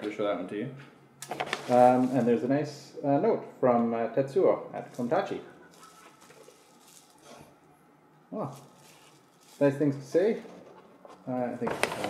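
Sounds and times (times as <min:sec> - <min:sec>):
paper and packing material rustling: 0:01.3 - 0:02.4, 0:04.9 - 0:07.5, 0:08.4 - 0:12.0.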